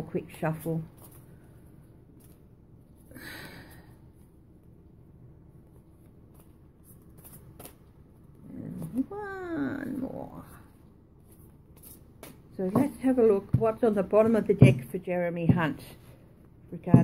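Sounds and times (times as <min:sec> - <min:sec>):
cards being shuffled: 0:06.2 - 0:08.1.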